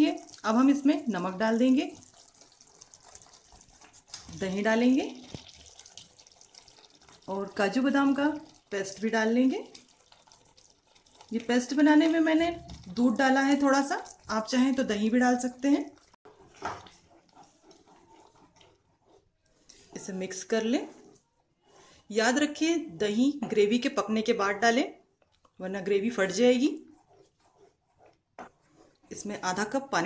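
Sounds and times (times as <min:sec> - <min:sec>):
gravy simmering in a pan: 0:00.0 - 0:21.3, 0:26.2 - 0:29.9.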